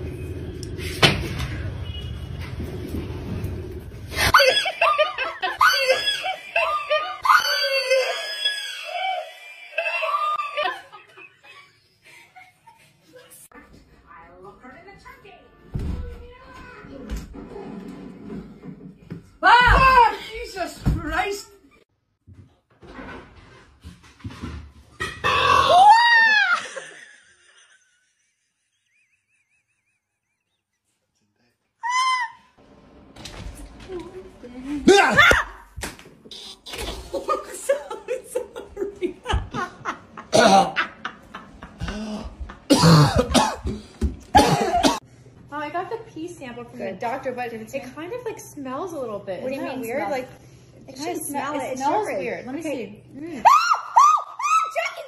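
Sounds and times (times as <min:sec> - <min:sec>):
woman screaming in fright: 0:05.4 - 0:10.7, 0:25.5 - 0:26.8, 0:53.4 - 0:55.0.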